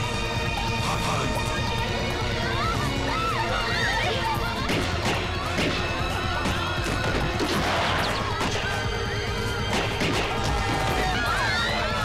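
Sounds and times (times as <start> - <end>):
revolver gunshot: 9.7 - 10.4.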